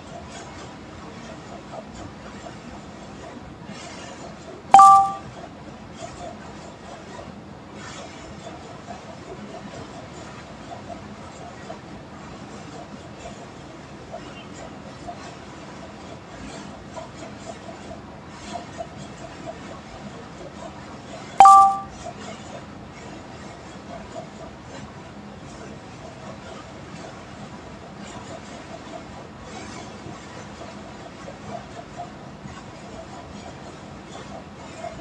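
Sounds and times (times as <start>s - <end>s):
two-note ding: 4.8s - 5.2s, 21.4s - 21.9s.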